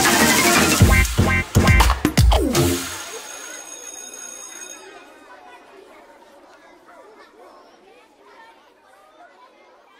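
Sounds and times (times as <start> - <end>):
babble of overlapping voices: 2.9 - 9.9.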